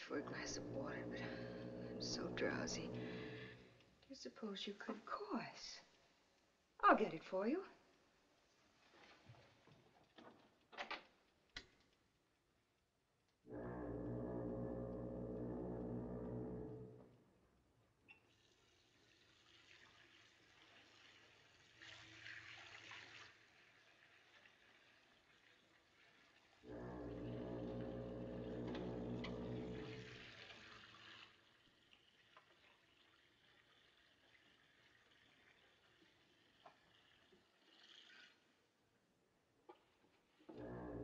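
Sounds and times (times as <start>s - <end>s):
water running from tap: 18.3s - 26.6s, 27.3s - 38.4s.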